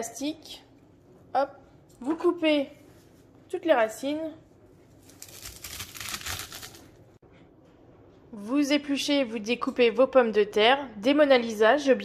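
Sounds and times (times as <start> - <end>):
watercress rustling and crunching: 5.0 - 6.8.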